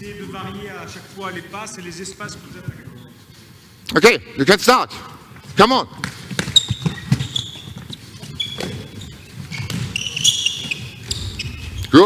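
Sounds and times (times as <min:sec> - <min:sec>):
shoes squeaking on court: 0:05.4 - 0:12.0
ball bouncing on floor: 0:06.0 - 0:10.9.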